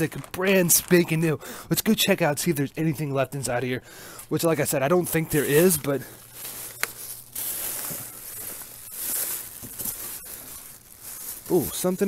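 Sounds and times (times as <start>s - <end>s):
plastic wrapping rustling: 0.0s - 1.4s, 4.2s - 12.0s.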